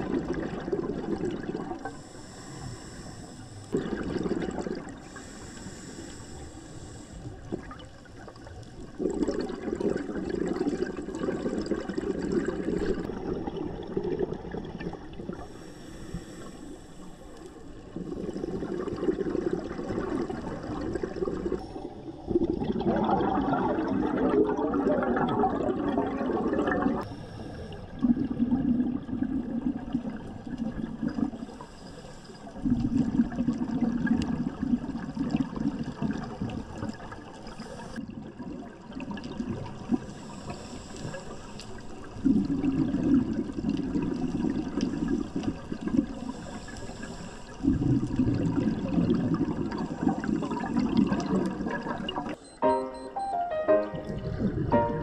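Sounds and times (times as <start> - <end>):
underwater exhaust bubbles: 0.0 - 52.6
diver inhaling: 1.9 - 3.8, 5.0 - 7.4, 15.4 - 17.8.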